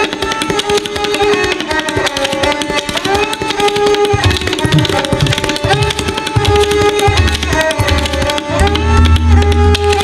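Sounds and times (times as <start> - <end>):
fast tabla playing: 0.0 - 10.0.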